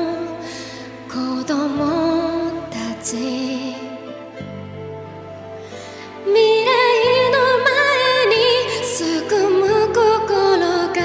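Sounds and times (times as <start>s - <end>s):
woman singing a slow ballad: 0.0s - 4.2s, 6.0s - 11.0s
soft instrumental accompaniment: 0.0s - 11.0s.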